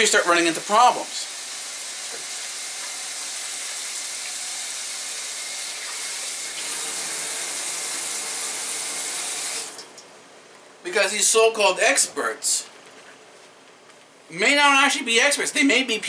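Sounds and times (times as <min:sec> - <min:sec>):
water running from a tap: 0:00.5 - 0:10.0.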